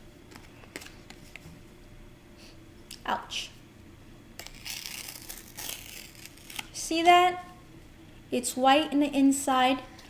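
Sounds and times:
card being torn by hand: 0:04.4 - 0:06.8.

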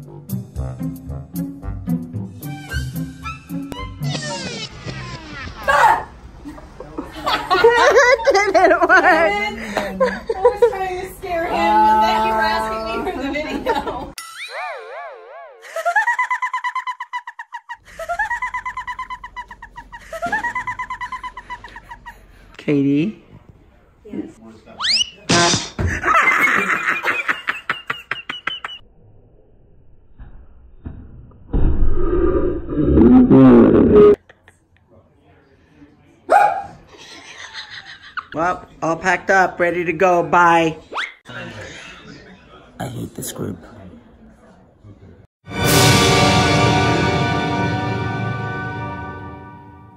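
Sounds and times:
wobbling warbling tone: 0:14.2 - 0:15.7, 0:31.9 - 0:34.2.

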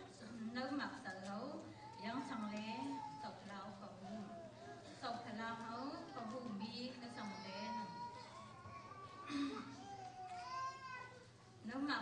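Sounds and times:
woman reading aloud: 0:05.0 - 0:08.1.

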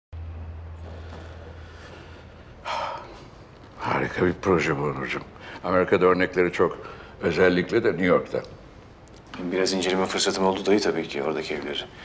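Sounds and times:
steady low hum: 0:00.2 - 0:12.0.

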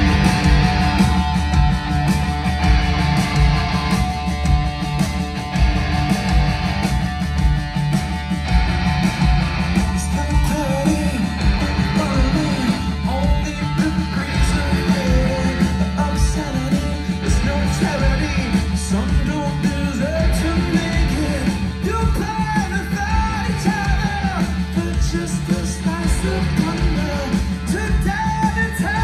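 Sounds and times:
bass guitar: 0:00.0 - 0:29.0
drums: 0:00.0 - 0:29.0
electric guitars: 0:00.0 - 0:29.0.

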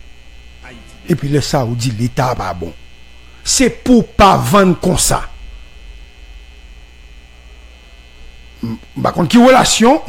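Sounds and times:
electrical hum and buzz: 0:00.0 - 0:10.0.

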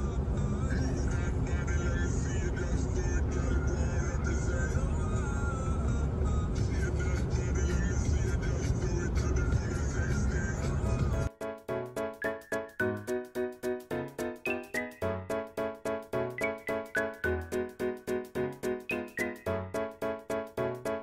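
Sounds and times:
car road and engine rumble: 0:00.0 - 0:11.3
background music: 0:06.6 - 0:21.0.

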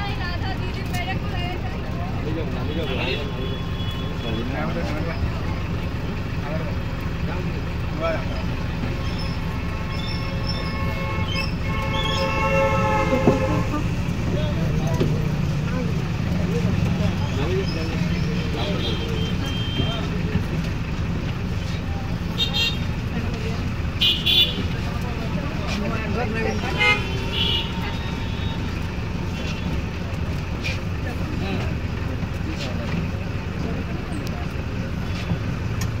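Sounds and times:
vehicle engine and road rumble: 0:00.0 - 0:36.0
vehicle horn: 0:09.1 - 0:13.9, 0:18.6 - 0:20.0, 0:24.0 - 0:24.6, 0:26.5 - 0:28.7.

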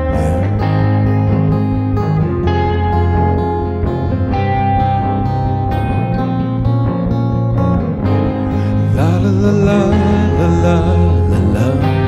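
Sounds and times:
acoustic guitar strumming: 0:00.0 - 0:12.0
held bass notes: 0:00.0 - 0:12.0
second guitar: 0:00.0 - 0:12.0.

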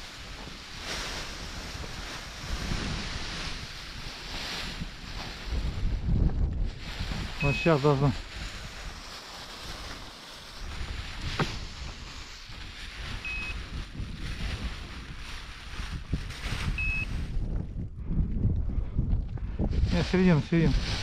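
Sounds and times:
wind buffeting microphone: 0:00.0 - 0:21.0
fabric rustling: 0:06.6 - 0:16.8
short high beeps: 0:13.2 - 0:13.6, 0:16.8 - 0:17.1.

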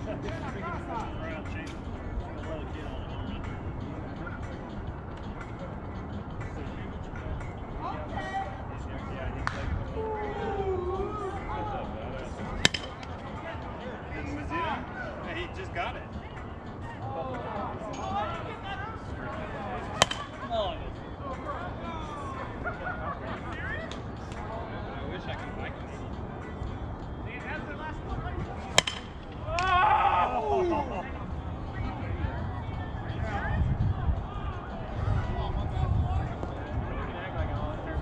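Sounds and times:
players calling and chattering: 0:00.0 - 0:38.0
bat striking ball: 0:12.5 - 0:13.2, 0:19.9 - 0:20.4, 0:28.6 - 0:29.8
sharp crack: 0:12.6 - 0:13.1, 0:20.0 - 0:20.4, 0:28.8 - 0:29.7.

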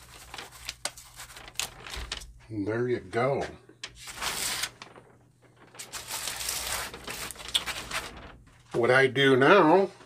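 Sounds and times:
rustling and scraping: 0:03.8 - 0:08.8.

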